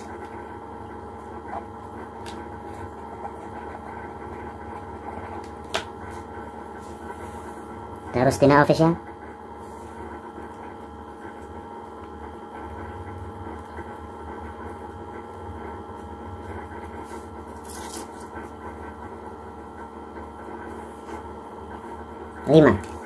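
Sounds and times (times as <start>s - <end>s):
paper slip being folded: 17.0s - 18.6s.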